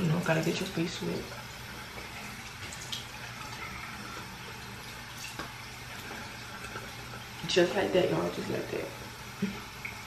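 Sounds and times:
tap water running into sink: 0.0s - 10.0s.

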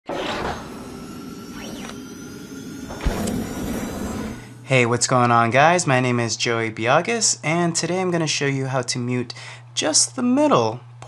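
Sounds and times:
whoosh: 0.1s - 4.6s
thin tone sweeping up and down: 0.1s - 5.3s.

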